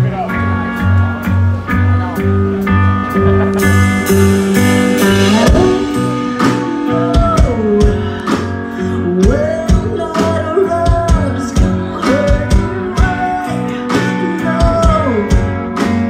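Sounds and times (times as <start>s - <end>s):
live rock band playing: 0.0s - 16.0s
drum hits: 3.3s - 7.6s
woman singing: 5.1s - 15.4s.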